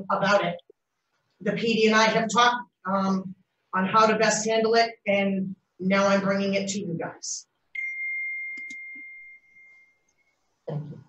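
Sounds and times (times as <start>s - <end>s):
high pure ringing tone: 7.8s - 10.4s.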